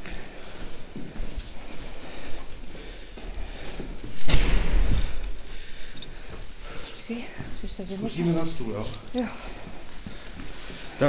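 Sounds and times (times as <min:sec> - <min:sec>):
heavy low thump: 0:04.1 - 0:05.3.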